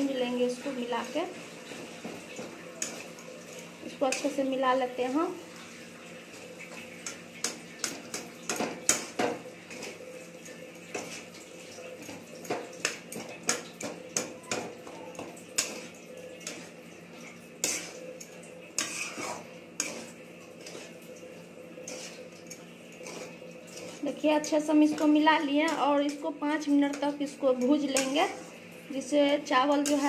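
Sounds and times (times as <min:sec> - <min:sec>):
rice frying: 0:00.0 - 0:30.0
metal spatula scraping a steel pan: 0:17.6 - 0:21.0, 0:21.8 - 0:26.2, 0:26.9 - 0:28.6, 0:29.7 - 0:30.0.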